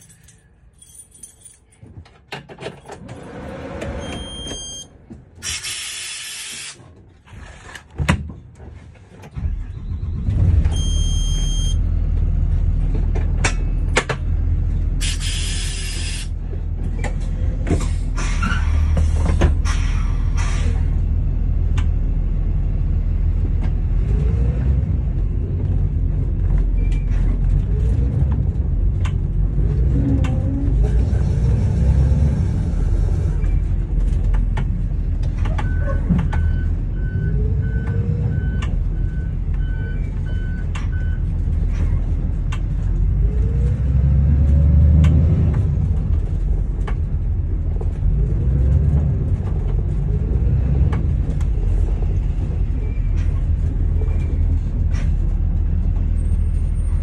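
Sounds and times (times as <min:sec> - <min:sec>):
bus engine rumbling: 0:00.0 - 0:57.0.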